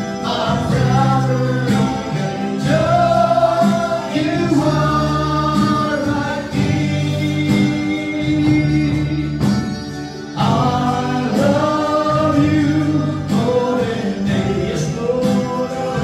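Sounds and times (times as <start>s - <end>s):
backing instruments: 0.0s - 16.0s
backing voices singing: 0.0s - 16.0s
man singing into a microphone: 0.0s - 16.0s.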